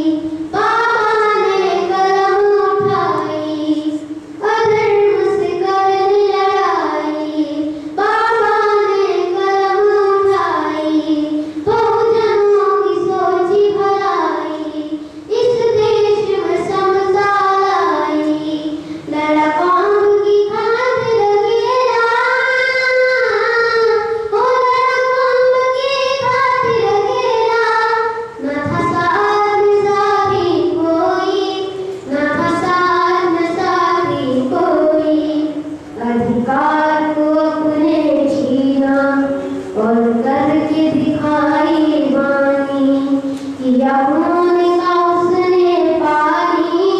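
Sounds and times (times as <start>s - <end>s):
boy singing: 0.0s - 46.9s.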